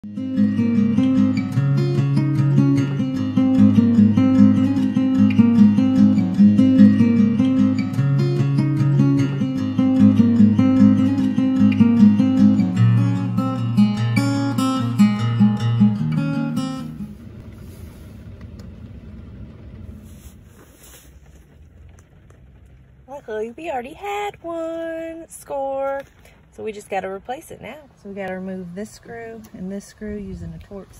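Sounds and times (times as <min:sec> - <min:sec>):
acoustic guitar strummed and picked: 0:00.0 - 0:18.0.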